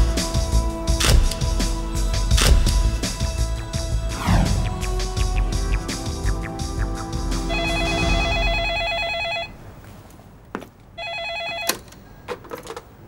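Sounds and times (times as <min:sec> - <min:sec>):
background music: 0:00.0 - 0:09.5
electronic telephone ringer warbling: 0:07.5 - 0:09.5, 0:11.0 - 0:11.8.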